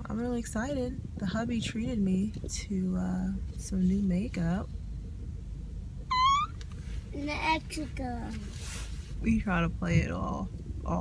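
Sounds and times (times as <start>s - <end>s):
car road rumble: 0.0s - 11.0s.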